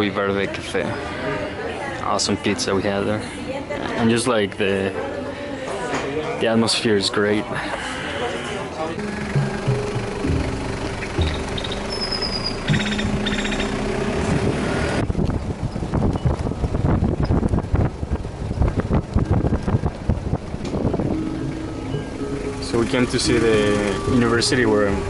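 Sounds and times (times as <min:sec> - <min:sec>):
road noise: 0:07.6 - 0:25.0
music with held notes: 0:09.0 - 0:15.0, 0:20.7 - 0:25.0
wind buffeting microphone: 0:12.6 - 0:22.1.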